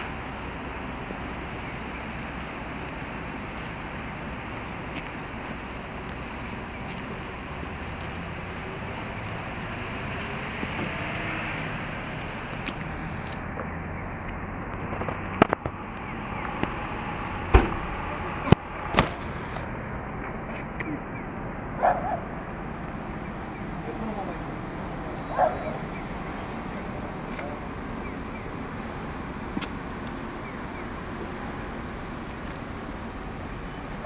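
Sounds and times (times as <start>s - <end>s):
sharp exhaust pops: 12.6s - 16.8s, 17.5s - 21.0s.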